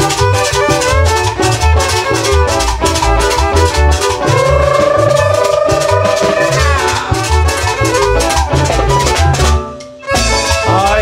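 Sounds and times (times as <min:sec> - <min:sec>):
drum kit beat: 0:00.0 - 0:11.0
fiddles: 0:00.0 - 0:11.0.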